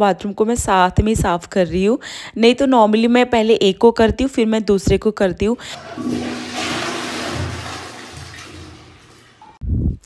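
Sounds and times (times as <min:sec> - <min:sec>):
toilet flushing: 0:05.6 - 0:09.6.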